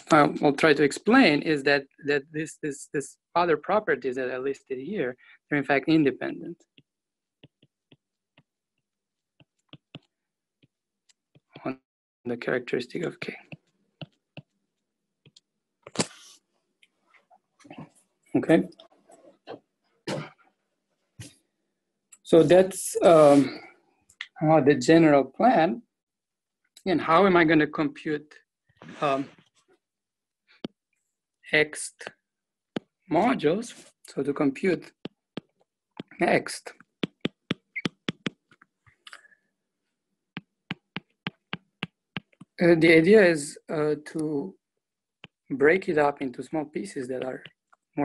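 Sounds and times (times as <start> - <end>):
person coughing: 20.1 - 20.4
stylus tapping on glass screen: 36.8 - 38.6, 40.4 - 42.6.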